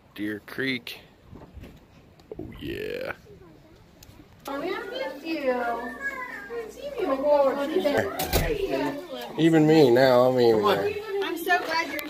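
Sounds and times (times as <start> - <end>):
women and children chattering excitedly: 3.1 - 12.0.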